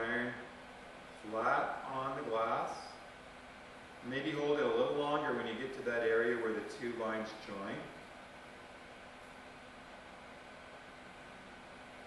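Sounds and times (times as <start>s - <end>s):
faint room tone hiss: 0.0s - 12.0s.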